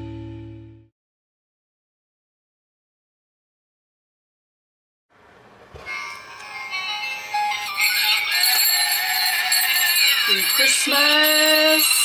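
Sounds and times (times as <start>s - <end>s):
tinny electronic christmas tune: 5.8s - 12.0s.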